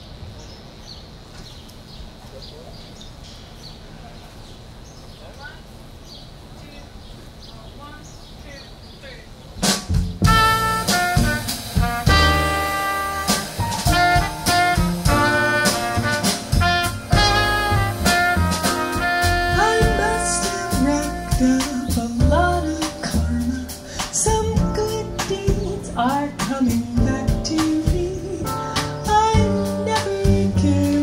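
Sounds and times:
bass: 0:00.0 - 0:31.0
drums: 0:08.1 - 0:31.0
drum-kit hit: 0:09.6 - 0:23.0
trumpet melody: 0:10.2 - 0:23.6.

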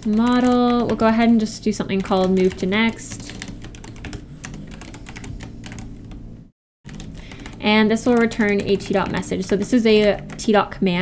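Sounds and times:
computer keyboard typing: 0:00.0 - 0:06.2, 0:06.9 - 0:11.0.

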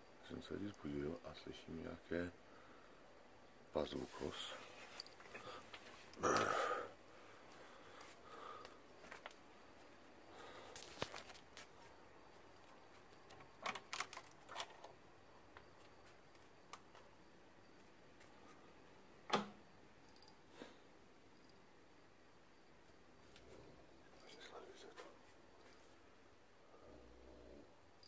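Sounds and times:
soft rustles: 0:03.9 - 0:06.2, 0:08.9 - 0:13.2.

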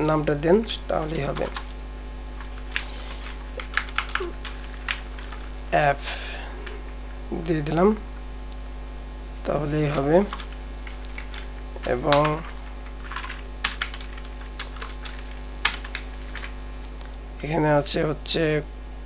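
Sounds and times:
low electrical mains hum: 0:00.0 - 0:19.0
vocal murmurs: 0:02.7 - 0:08.2.

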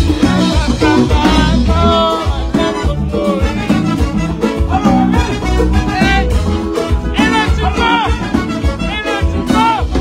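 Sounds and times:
bass: 0:00.0 - 0:10.0
drum kit: 0:00.0 - 0:10.0
electric guitar lead: 0:00.0 - 0:10.0.

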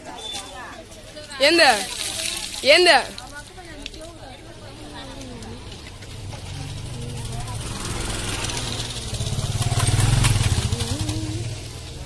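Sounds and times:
faint crowd chatter: 0:00.0 - 0:12.0
motorcycle passing: 0:04.5 - 0:12.0.

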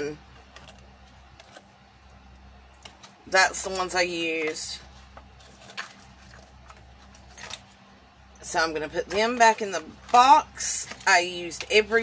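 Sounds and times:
steady low hum: 0:00.0 - 0:12.0
gloved hands handling cardboard box: 0:02.8 - 0:07.8.

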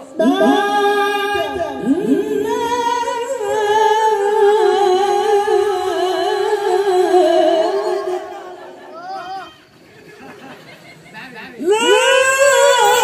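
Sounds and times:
men singing unaccompanied: 0:00.0 - 0:08.9.

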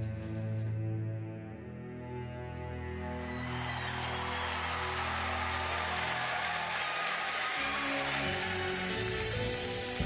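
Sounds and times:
audience applauding: 0:02.8 - 0:10.0.

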